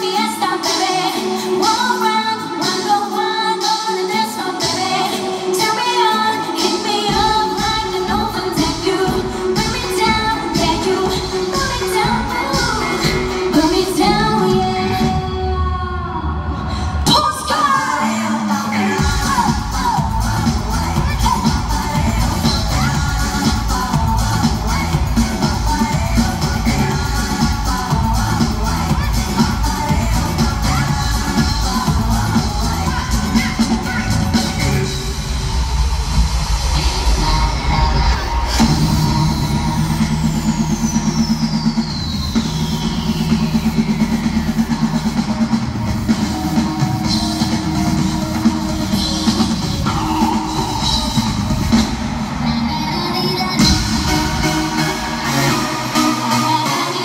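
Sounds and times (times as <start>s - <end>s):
electronic dance-pop music: 0.0s - 57.0s.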